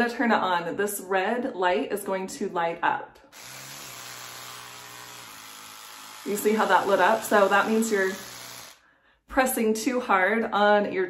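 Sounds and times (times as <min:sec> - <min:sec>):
electric toothbrush buzzing: 0:03.3 - 0:08.8.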